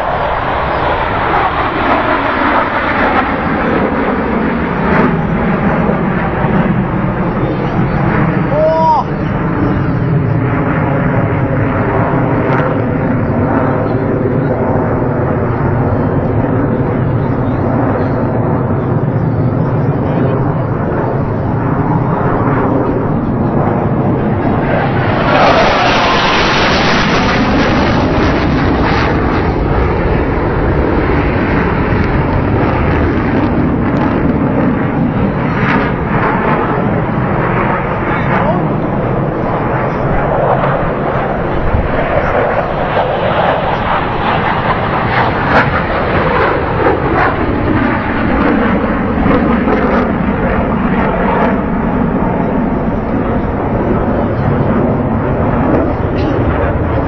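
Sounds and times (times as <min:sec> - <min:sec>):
jet engines flying over: 0:00.0 - 0:57.0.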